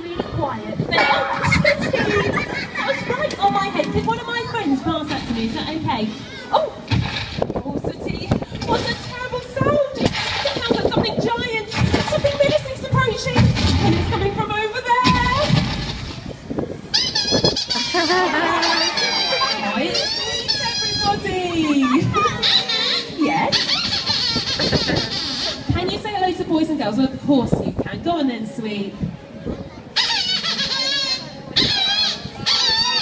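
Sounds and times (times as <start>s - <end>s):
high-pitched puppet squeaks: 16.9s - 25.7s, 30.0s - 33.0s.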